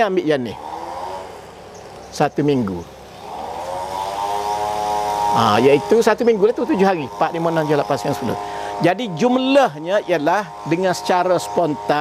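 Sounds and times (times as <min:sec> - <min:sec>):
motor engine droning: 0:00.0 - 0:12.0.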